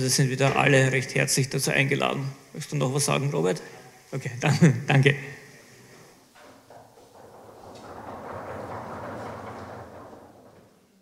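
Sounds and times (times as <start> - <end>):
scattered knocks: 6.4 - 11.0.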